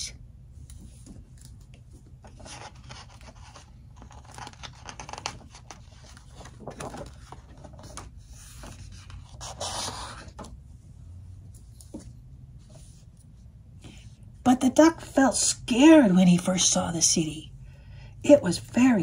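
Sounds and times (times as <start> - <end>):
book page turning: 0.6 - 10.6.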